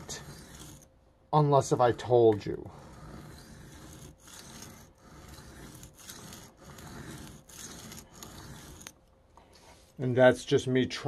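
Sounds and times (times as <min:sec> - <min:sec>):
knife stroking on sharpening stone: 0:00.0 - 0:00.9, 0:01.8 - 0:09.0.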